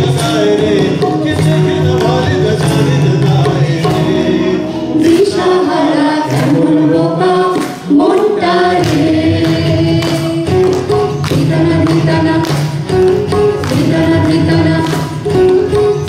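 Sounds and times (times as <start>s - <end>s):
group singing in unison: 0.0s - 16.0s
guitar accompaniment: 0.0s - 16.0s.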